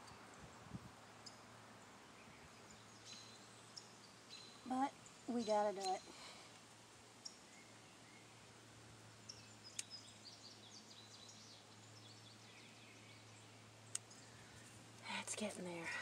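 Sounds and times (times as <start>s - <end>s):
faint bird chirps: 0.0s - 6.5s
low steady hum: 0.0s - 16.0s
garden snips cutting: 9.6s - 10.0s.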